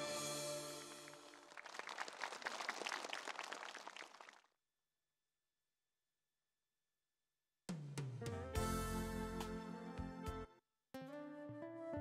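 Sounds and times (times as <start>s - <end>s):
music: 0.0s - 1.4s, 7.7s - 12.0s
audience applauding: 0.9s - 4.5s.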